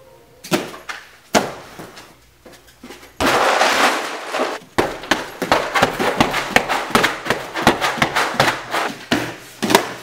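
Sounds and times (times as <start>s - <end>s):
kick smacking rubber dummy: 0.5s - 1.9s, 4.4s - 10.0s
kick thudding punching bag: 4.8s - 10.0s.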